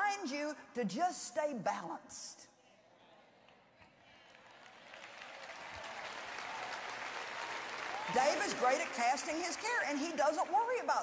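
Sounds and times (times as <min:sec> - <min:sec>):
audience applauding: 0:04.2 - 0:10.9.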